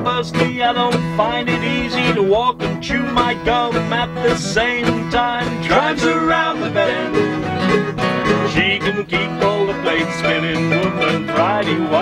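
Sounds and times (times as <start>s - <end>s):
acoustic guitars and plucked strings: 0.0s - 12.0s
man singing: 0.0s - 12.0s.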